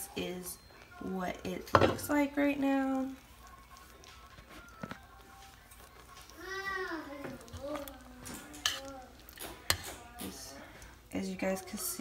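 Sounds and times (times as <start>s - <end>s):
child calling out: 6.4s - 8.1s.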